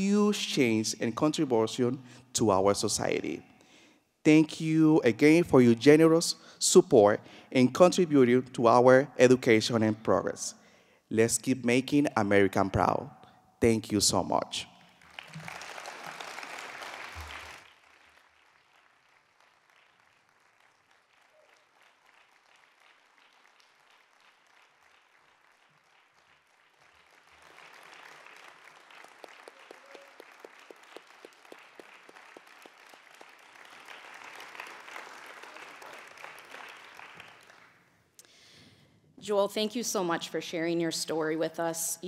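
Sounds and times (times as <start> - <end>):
audience applause: 15.0 - 37.8.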